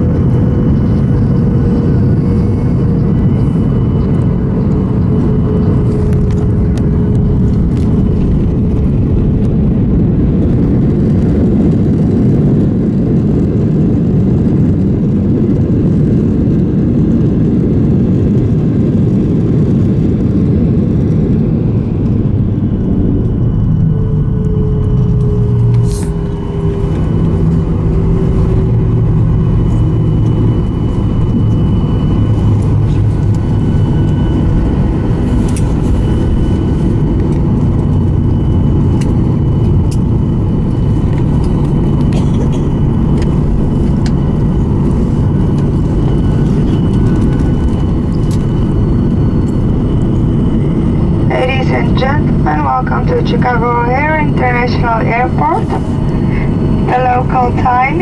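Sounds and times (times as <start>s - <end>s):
jet cabin low rumble: 0.0s - 58.0s
jet engine whine: 0.0s - 58.0s
cabin announcement: 51.3s - 58.0s.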